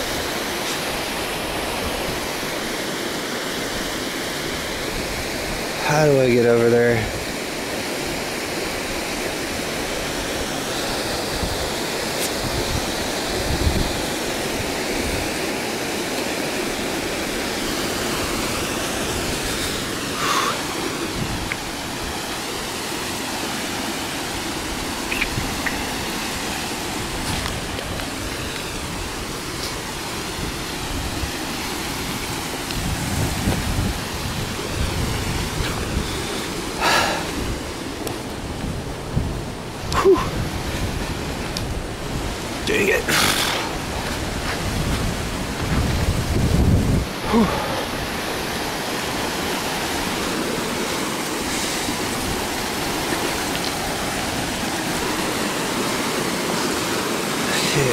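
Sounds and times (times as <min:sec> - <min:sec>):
water running over rock: 0:00.0 - 0:38.9, 0:39.8 - 0:57.9
surf: 0:00.0 - 0:57.9.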